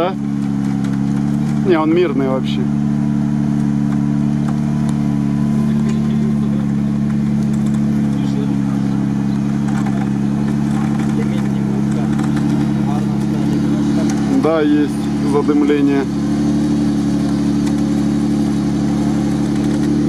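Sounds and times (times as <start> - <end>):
engine running at steady revs: 0.0 - 20.0.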